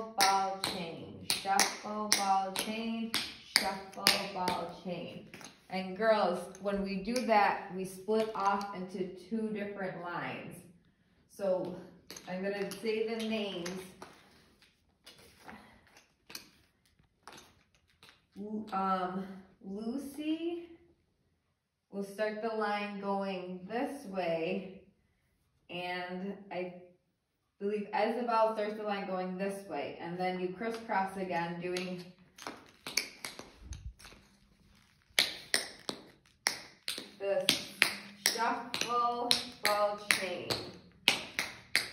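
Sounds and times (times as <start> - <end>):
tap shoes tapping on floor: 0.0 - 5.7, 31.7 - 41.9.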